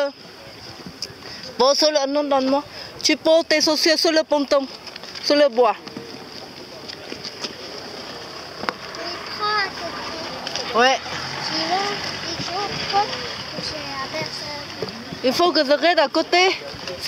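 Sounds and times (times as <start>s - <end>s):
people talking in background: 0.0s - 17.0s
steady outdoor hiss: 0.0s - 17.0s.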